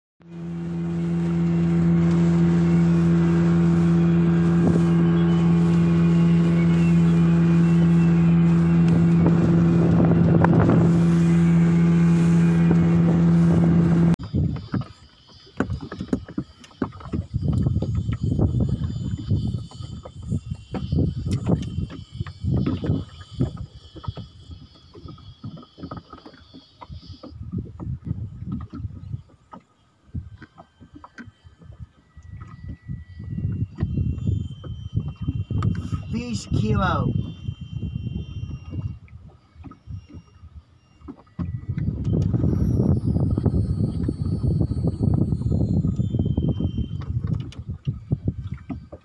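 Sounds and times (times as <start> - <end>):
outboard motor running: 0.2 - 49.0
water slapping against hull: 0.2 - 49.0
wind gusts on microphone: 0.5 - 14.9, 17.0 - 24.2, 27.3 - 29.3, 31.6 - 40.7, 41.3 - 49.0.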